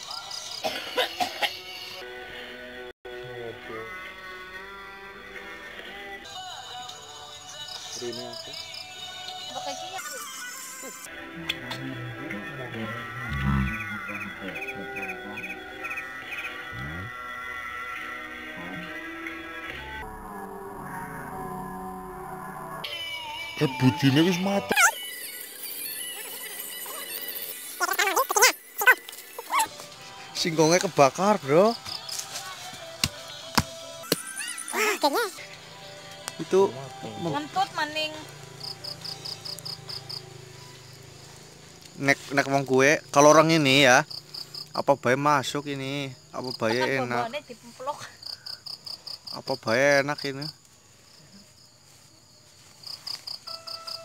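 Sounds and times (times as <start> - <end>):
insect chirping: 0.0 - 2.0, 6.7 - 11.1, 12.6 - 30.3, 31.2 - 32.3, 34.0 - 54.0
background music: 0.0 - 20.6, 22.4 - 41.2.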